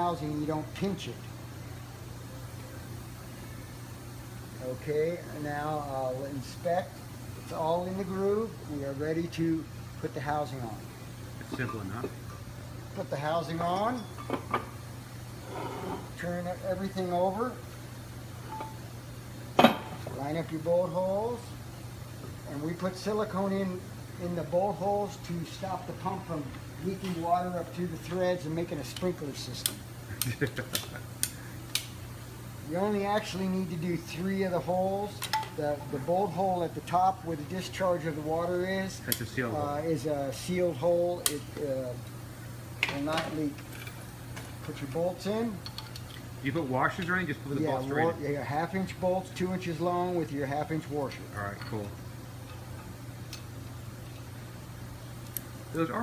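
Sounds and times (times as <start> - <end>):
steady low hum: 0.0 - 56.0
sharp light clicks on metal: 28.9 - 32.0, 39.1 - 39.3, 41.2 - 41.5.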